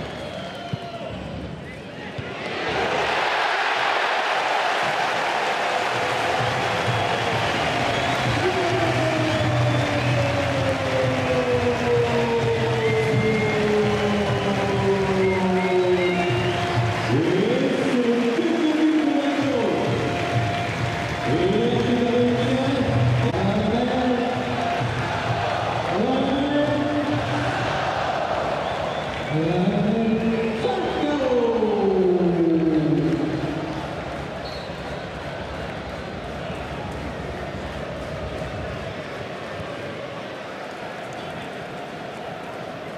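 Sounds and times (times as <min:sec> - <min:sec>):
crowd celebrating: 0:00.0 - 0:42.9
music: 0:05.9 - 0:29.6
crowd chanting: 0:27.2 - 0:29.0.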